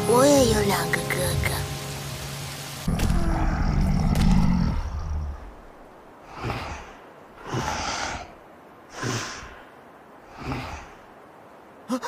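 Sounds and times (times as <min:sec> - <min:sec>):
beast's deep growling roar: 0:02.9 - 0:05.5.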